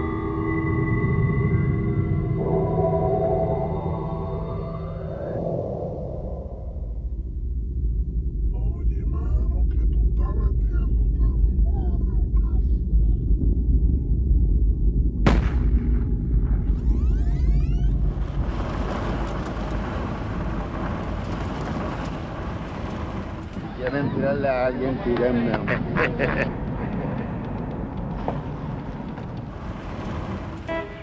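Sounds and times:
deep rumbling drone: 0.0s - 31.0s
people speaking: 8.6s - 13.3s, 23.5s - 26.5s
sharp crack: 15.2s - 17.3s, 17.9s - 25.4s.

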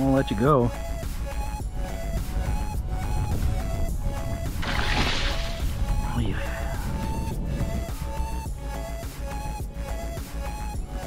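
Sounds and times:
background music with steady beat: 0.0s - 11.0s
water splash: 4.5s - 6.0s.

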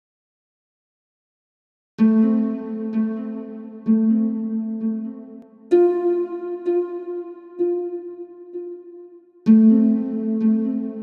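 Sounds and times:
sustained music chord: 2.0s - 11.0s.

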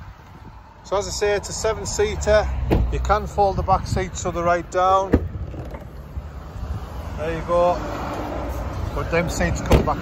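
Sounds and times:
tailgate rising rumble: 5.0s - 6.2s.

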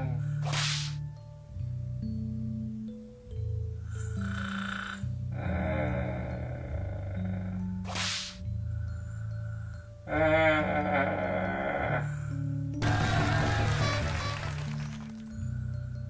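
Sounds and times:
slow background music: 0.0s - 16.0s
short swish: 0.4s - 1.0s, 7.9s - 8.4s.

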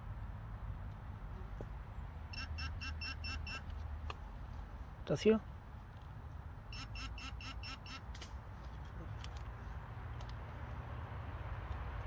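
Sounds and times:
metal detector short beeps: 2.4s - 3.6s, 6.7s - 8.0s.

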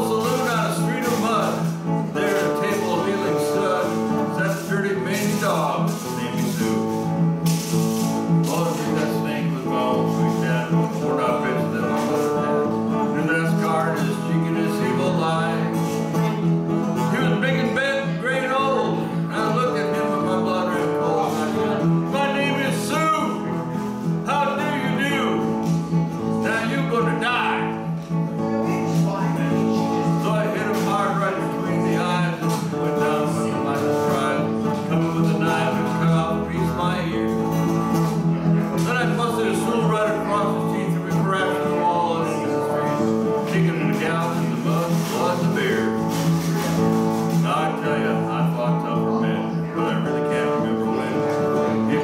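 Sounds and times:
acoustic guitar strumming: 0.0s - 52.0s
man singing country song: 0.0s - 52.0s.

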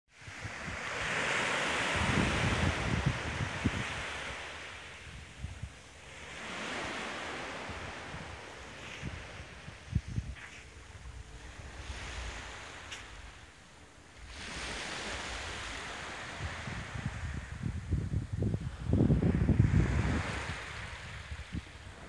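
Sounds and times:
small waves washing on beach: 0.1s - 22.0s
wind buffeting microphone: 0.2s - 13.6s, 14.2s - 22.0s.

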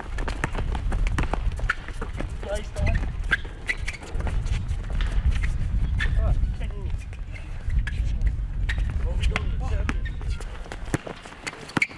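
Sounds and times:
sneakers running on asphalt: 0.0s - 6.0s.

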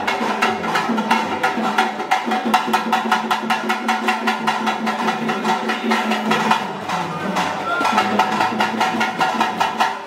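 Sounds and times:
hand drum beaten fast: 0.0s - 10.0s.

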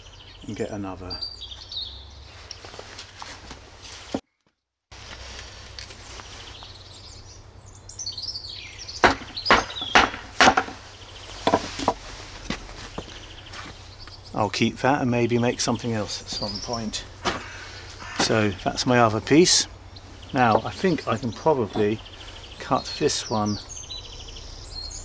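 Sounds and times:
birds chirping: 0.0s - 3.4s, 5.1s - 25.0s
sharp wooden knocks: 9.0s - 10.8s, 11.4s - 12.0s, 17.2s - 18.4s.

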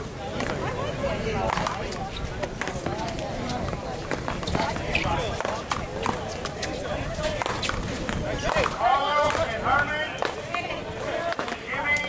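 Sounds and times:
people talking: 0.0s - 12.0s
running footsteps on concrete: 0.3s - 12.0s.

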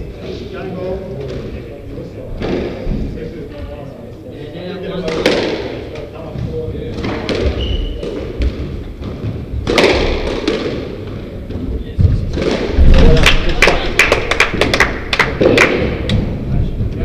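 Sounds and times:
thuds and knocks on wooden court: 5.1s - 13.6s.

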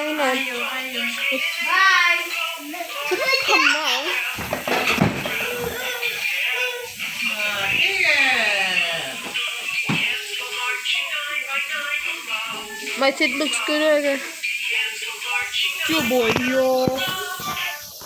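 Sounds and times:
music: 0.0s - 18.0s
child's sliding vocal sounds: 5.3s - 8.0s.

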